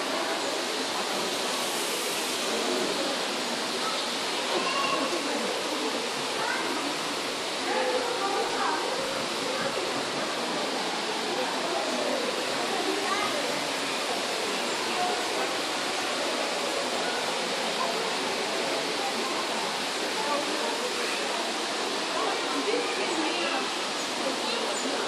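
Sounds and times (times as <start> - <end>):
falling water rushing: 0.0 - 25.0
murmur of voices: 0.0 - 25.0.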